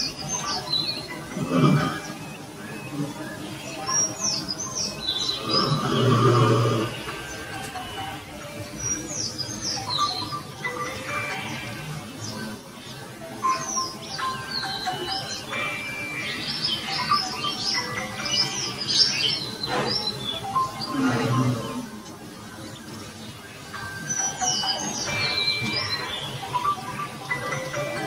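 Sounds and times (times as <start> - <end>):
background music: 0.0 - 28.0
songbirds chirping: 0.0 - 28.0.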